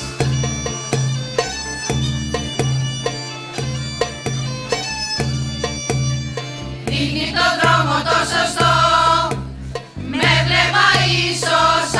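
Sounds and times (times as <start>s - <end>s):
drum beats: 0.0s - 11.9s.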